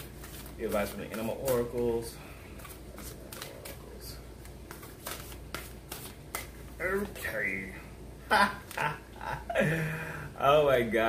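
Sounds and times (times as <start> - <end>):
cards being shuffled by hand: 0.0 - 7.4.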